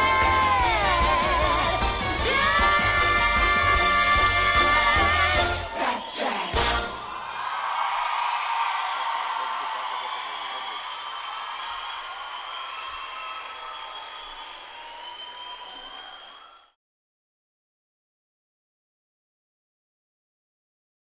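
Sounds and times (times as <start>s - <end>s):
high-pitched shouts: 0.0s - 9.8s
audience applauding and cheering: 0.0s - 16.8s.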